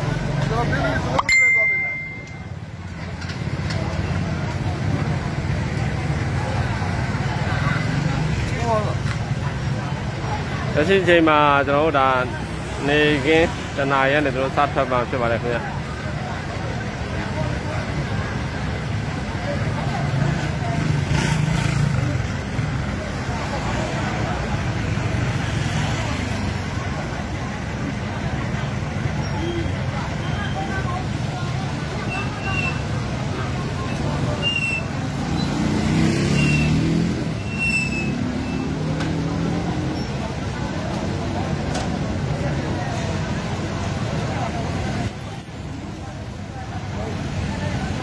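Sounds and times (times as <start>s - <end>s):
vehicles running: 0.0s - 48.0s
voices: 0.0s - 48.0s.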